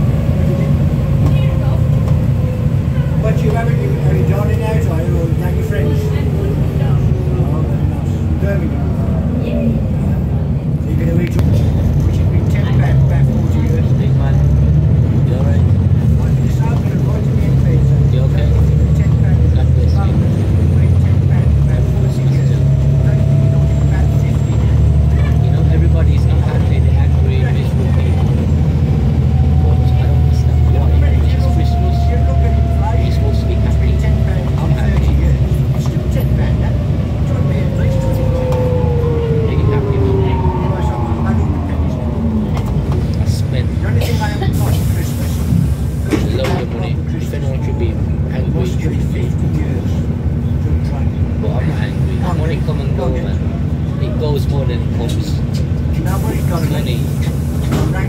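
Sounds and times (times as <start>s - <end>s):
bus engine drone with whine: 0.0s - 58.0s.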